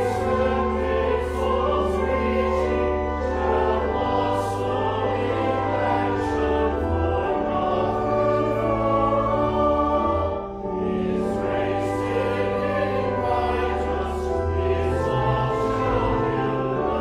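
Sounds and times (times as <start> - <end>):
congregation singing a hymn: 0.0 - 17.0
pipe organ: 0.0 - 17.0.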